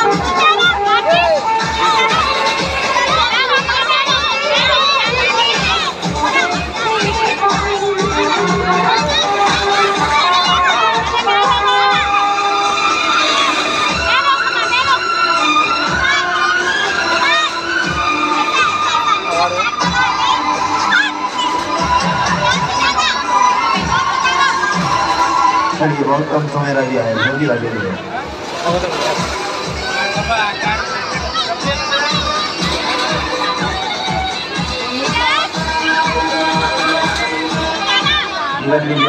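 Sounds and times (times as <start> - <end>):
thumping music beat: 0.0 - 25.8, 28.7 - 38.3
children shouting and shrieking: 0.0 - 39.0.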